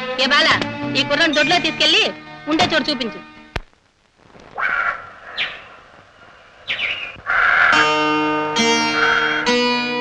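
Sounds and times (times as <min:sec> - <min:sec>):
film score music: 0:00.0 - 0:03.6
plucked-string melody: 0:00.0 - 0:03.6, 0:07.7 - 0:10.0.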